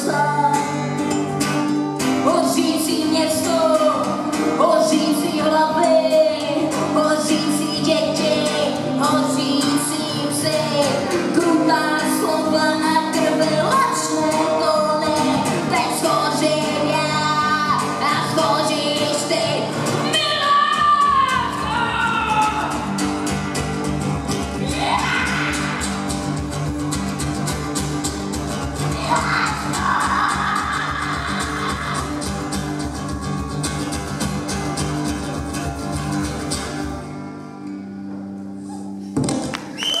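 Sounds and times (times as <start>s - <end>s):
person singing: 0.0s - 1.1s, 2.2s - 23.0s, 28.9s - 32.4s
acoustic folk band playing: 0.0s - 40.0s.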